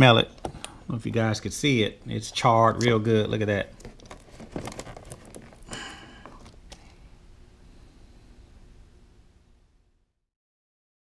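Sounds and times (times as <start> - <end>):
wiring harness clicks and rustling: 2.7 - 7.0.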